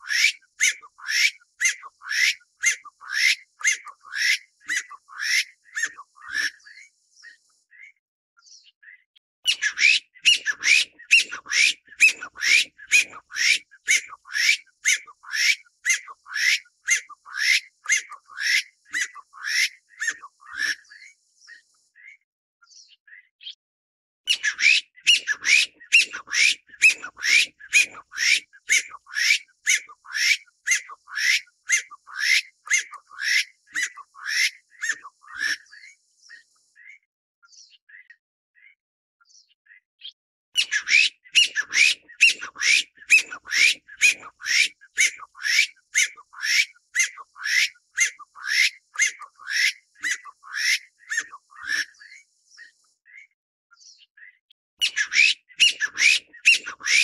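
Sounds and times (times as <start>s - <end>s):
partridge calling: 0.0s - 7.9s, 8.9s - 21.1s, 24.3s - 37.0s, 40.6s - 53.2s, 54.2s - 57.0s.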